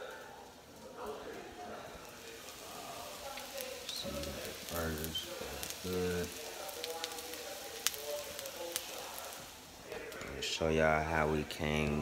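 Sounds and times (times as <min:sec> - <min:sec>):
patties sizzling in a hot pan: 0:00.8 - 0:12.0.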